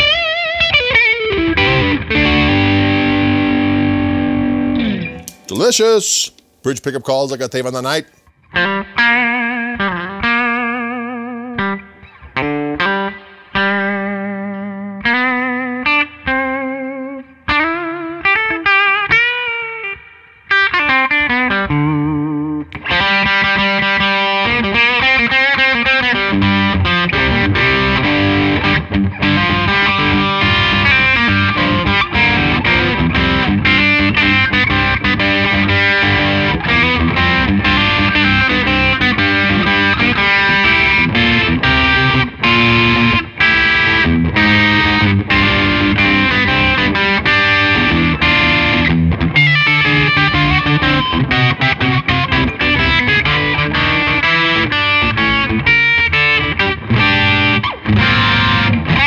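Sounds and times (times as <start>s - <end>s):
electric guitar through amplifier: 0.0s - 7.3s, 8.5s - 59.0s.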